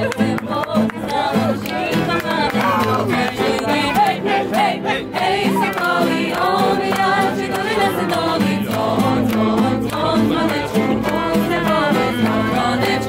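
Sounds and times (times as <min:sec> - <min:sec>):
acoustic guitar: 0:00.0 - 0:13.0
group of voices singing: 0:00.0 - 0:13.0.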